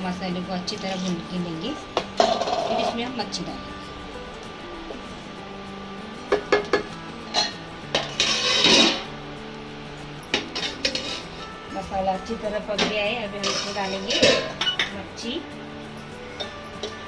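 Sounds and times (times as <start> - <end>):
wooden spatula scraping a pan: 8.0 - 9.1.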